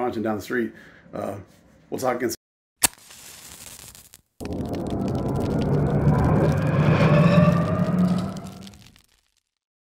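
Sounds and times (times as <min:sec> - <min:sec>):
faint gliding tones: 0:04.4 - 0:08.8
deep rumbling rush: 0:04.4 - 0:09.0.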